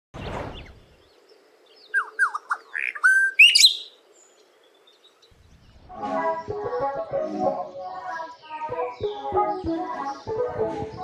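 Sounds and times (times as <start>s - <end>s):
short rushing noise: 0.2s - 0.9s
bird chirps: 0.2s - 6.8s.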